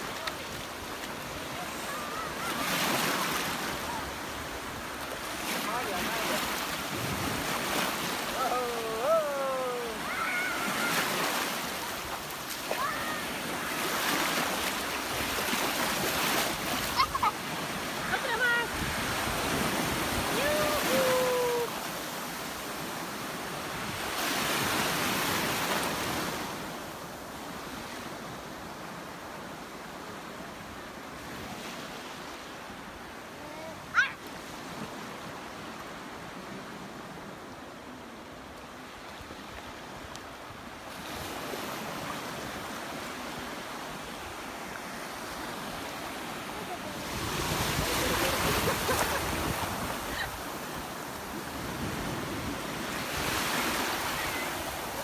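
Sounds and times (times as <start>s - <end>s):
small waves breaking in shallows: 0.0s - 55.0s.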